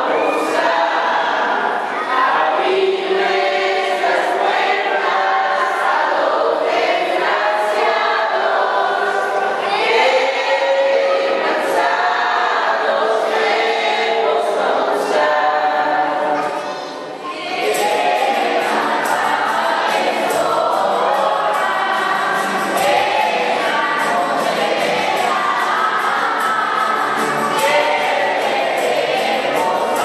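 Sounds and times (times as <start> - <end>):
women and children singing: 0.0 - 30.0.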